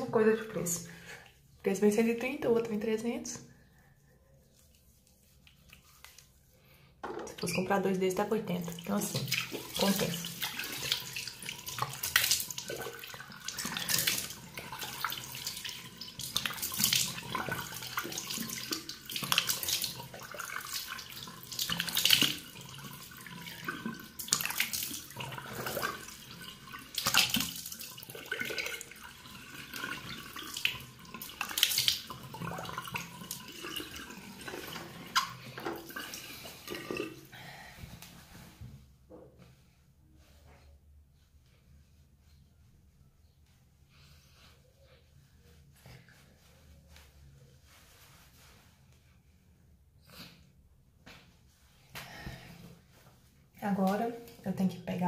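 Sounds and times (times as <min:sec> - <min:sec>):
water splashing on face: 0:08.6 - 0:37.1.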